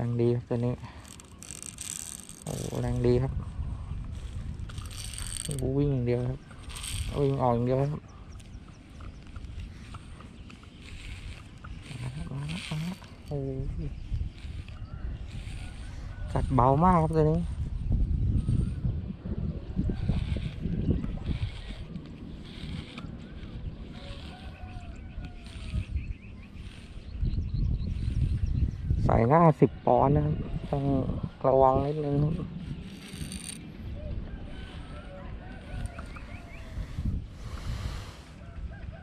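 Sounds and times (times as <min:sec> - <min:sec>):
fishing reel ticking: 0:00.0 - 0:03.4, 0:04.0 - 0:17.5, 0:19.9 - 0:28.8, 0:30.1 - 0:33.9
wind buffeting microphone: 0:00.0 - 0:39.0.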